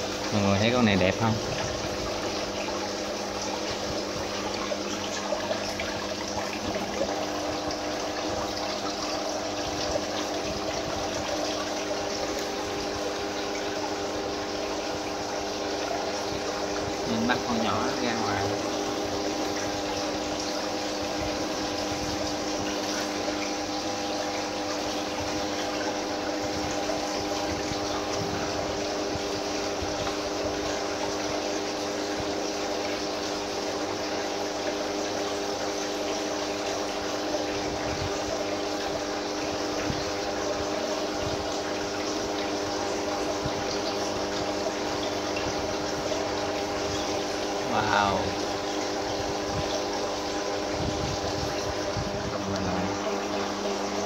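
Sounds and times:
aquarium pump humming: 0.0s - 54.0s
rush of moving water: 0.0s - 54.0s.

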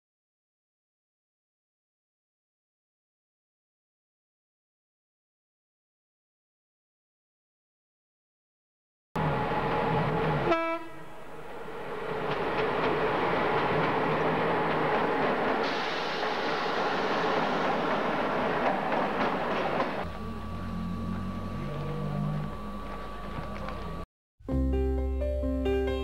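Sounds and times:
train horn: 10.2s - 11.4s
train wheels clattering on rails: 11.9s - 21.3s.

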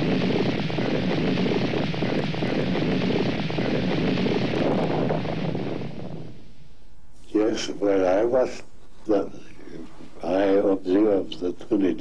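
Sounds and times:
explosion rumble roaring: 0.0s - 6.5s.

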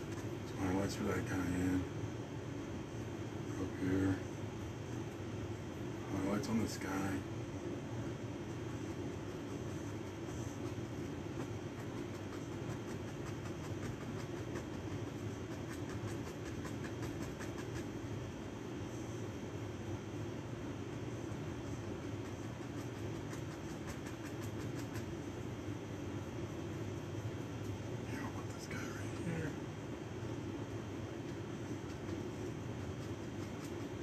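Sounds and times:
air conditioning hum: 0.0s - 34.0s
faint rapid ticks: 9.5s - 18.0s, 22.0s - 25.4s, 31.2s - 34.0s.

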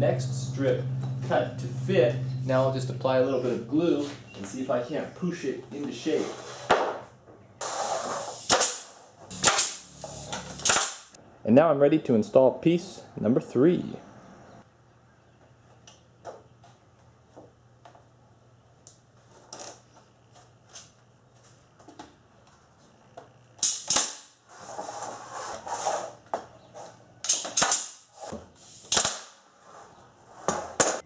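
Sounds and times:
nail gun shots: 8.4s - 9.8s, 10.6s - 11.2s, 23.6s - 24.3s, 27.2s - 28.1s, 28.9s - 29.4s.

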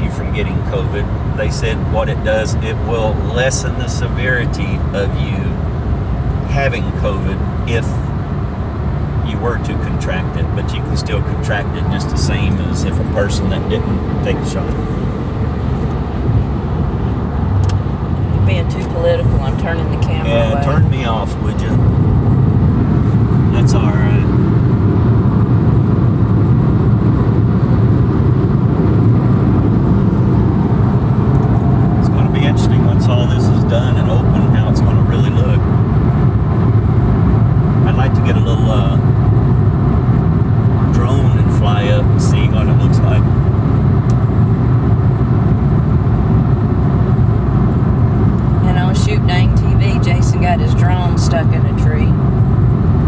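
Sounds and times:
voices: 0.0s - 5.6s, 6.5s - 8.0s, 9.3s - 14.9s, 18.4s - 21.8s, 23.5s - 24.4s, 32.0s - 35.6s, 37.8s - 39.0s, 40.9s - 43.2s, 48.6s - 52.2s
car cabin road and engine noise: 0.0s - 53.0s.

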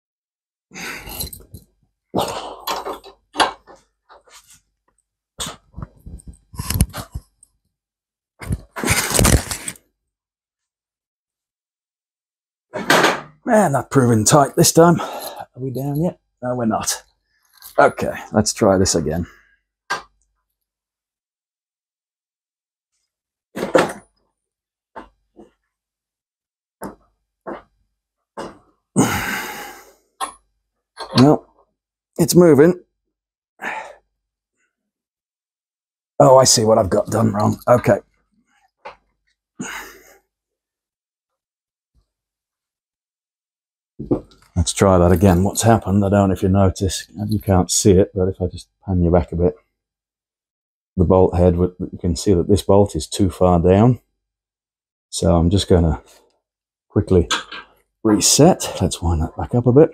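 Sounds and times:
metal clunks and knocks: 12.8s - 13.4s.

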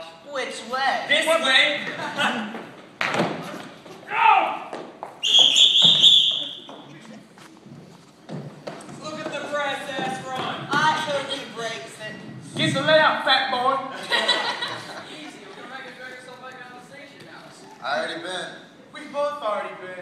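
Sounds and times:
people talking and laughing: 0.4s - 3.8s, 6.0s - 19.3s
people shouting: 4.1s - 4.7s
shrill whistle: 5.2s - 6.7s.

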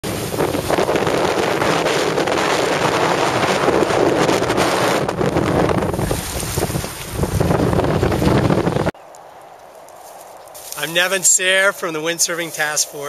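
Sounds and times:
choppy water: 0.0s - 9.0s
strong wind on microphone: 0.0s - 9.0s.

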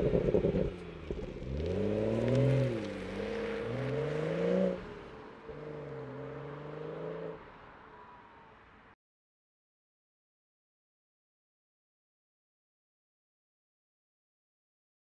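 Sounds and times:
car engine accelerating: 0.0s - 8.8s.

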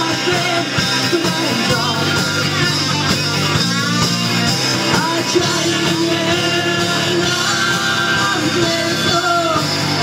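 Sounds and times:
drums: 0.0s - 10.0s
electric guitar: 0.0s - 10.0s
folk-rock band playing: 0.0s - 10.0s.

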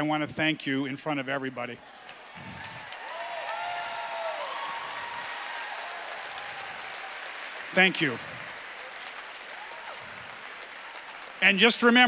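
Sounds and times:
audience applauding: 1.8s - 12.0s
voices cheering: 1.8s - 12.0s.

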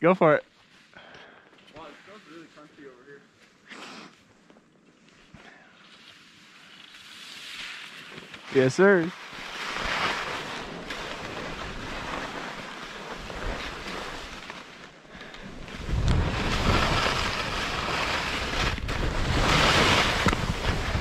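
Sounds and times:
skis scraping over snow: 1.7s - 3.2s, 5.8s - 21.0s
wind rumble on microphone: 15.5s - 21.0s.

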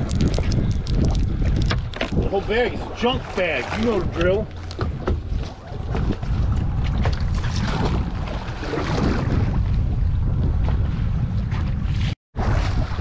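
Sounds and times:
water against boat hull: 0.0s - 13.0s
wind buffeting microphone: 0.0s - 13.0s.

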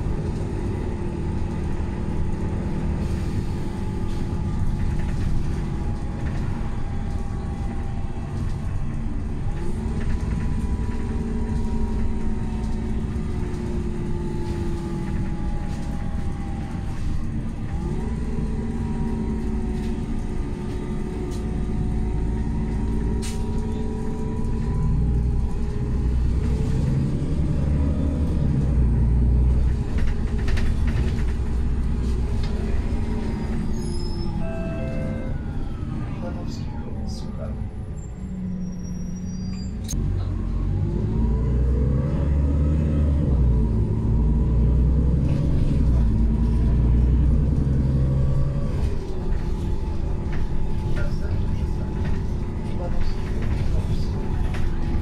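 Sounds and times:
bus engine running: 0.0s - 55.0s.

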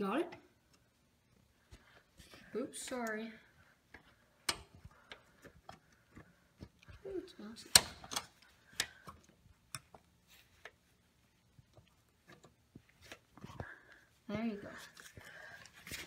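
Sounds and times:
pliers clicking and scraping metal: 7.6s - 10.8s.

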